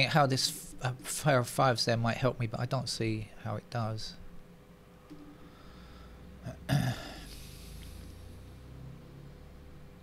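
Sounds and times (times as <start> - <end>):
faint steady hum: 0.0 - 10.0
man's throaty vocal sound: 6.4 - 8.0.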